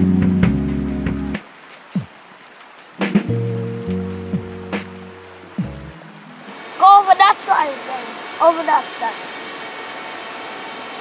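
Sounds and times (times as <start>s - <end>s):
background music: 0.0s - 1.4s, 3.0s - 6.6s
steady outdoor hiss: 0.0s - 11.0s
child calling out: 6.8s - 9.2s.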